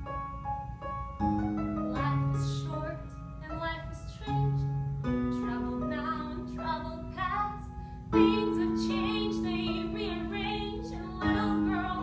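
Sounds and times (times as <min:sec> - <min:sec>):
piano playing sustained chords: 0:00.0 - 0:12.0
woman singing: 0:01.9 - 0:04.7, 0:05.3 - 0:12.0.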